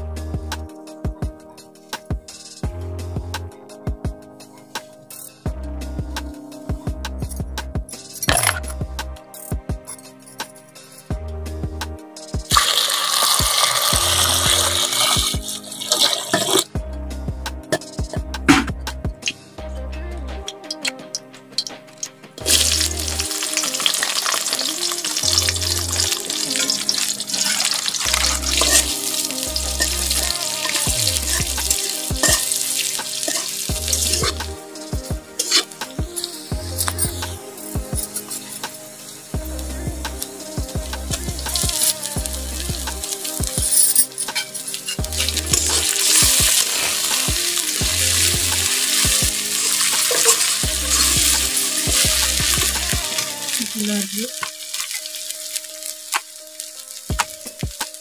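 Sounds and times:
music with deep bass beat: 0.0 - 54.5, 57.1 - 58.0
metal spatula stirring: 12.5 - 16.7, 20.8 - 37.1, 43.1 - 57.6
onion sizzling in hot oil: 12.5 - 16.7, 22.4 - 58.0.

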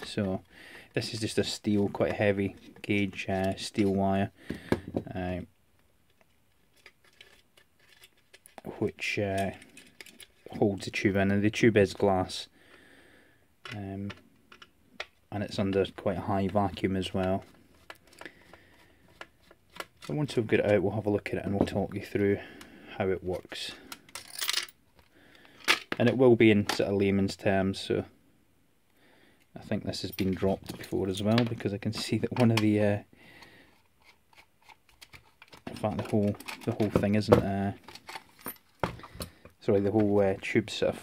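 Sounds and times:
plastic clicks: 13.6 - 15.8.

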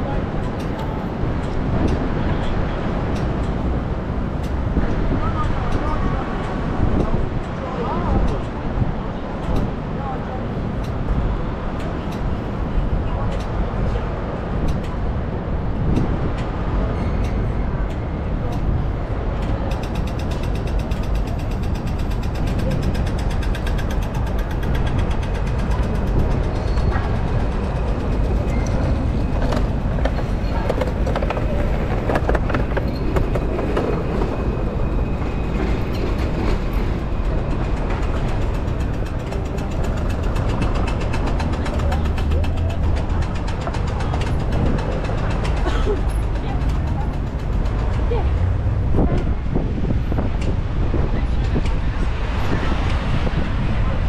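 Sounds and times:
traffic rumble of cars and trams: 0.0 - 54.0.

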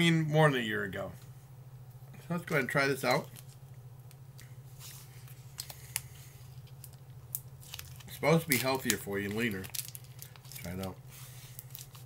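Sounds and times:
steady low hum: 0.0 - 12.0
plastic wrapper crinkling: 2.5 - 12.0.

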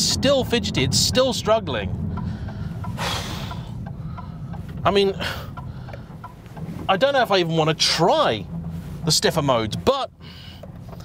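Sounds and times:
engine and tyres rumbling: 0.0 - 11.0.

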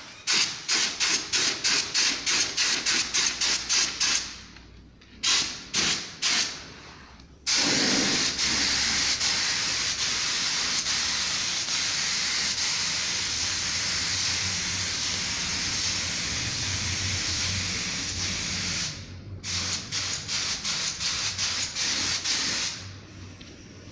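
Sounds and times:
paint spray gun hissing: 7.5 - 16.3.

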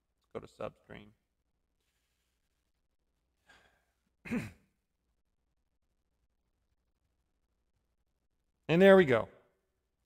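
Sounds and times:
faint breath drawn in: 3.4 - 4.1.

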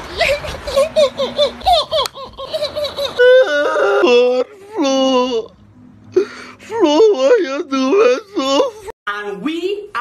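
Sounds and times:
person laughing high-pitched: 0.0 - 5.4, 6.7 - 8.9.

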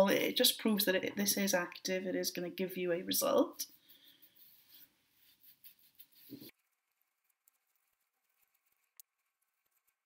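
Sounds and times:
gauze pads rubbing skin: 3.6 - 6.8.

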